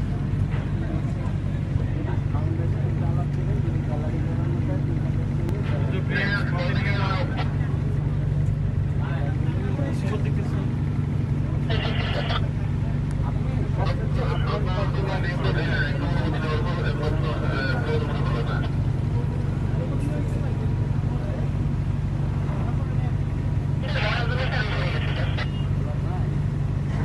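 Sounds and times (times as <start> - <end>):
boat engine droning: 0.0 - 27.0
people's voices: 0.0 - 27.0.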